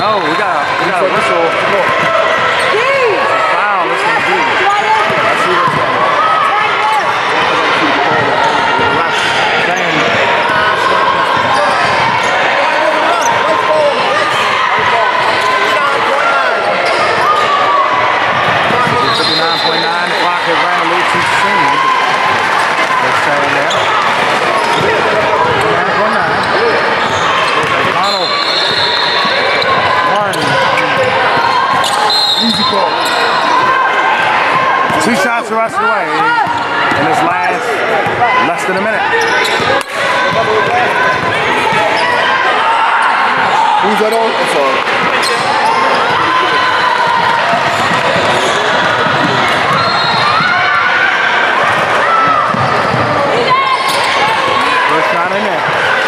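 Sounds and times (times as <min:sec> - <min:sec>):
many overlapping voices: 0:00.0 - 0:56.0.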